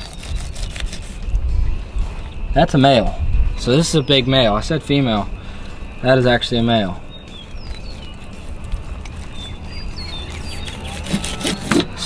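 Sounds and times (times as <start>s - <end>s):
knife scratching through fish: 0.0s - 1.3s, 7.7s - 12.0s
wind rumble on microphone: 0.0s - 6.0s.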